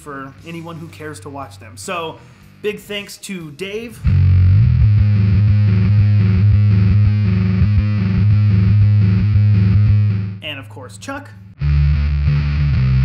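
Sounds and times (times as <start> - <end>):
distorted electric bass riff: 3.9 - 13.0.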